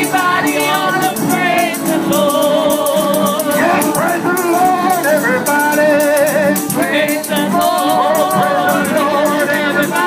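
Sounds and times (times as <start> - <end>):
rattling percussion beat: 0.0 - 10.0
voices singing gospel: 0.0 - 10.0.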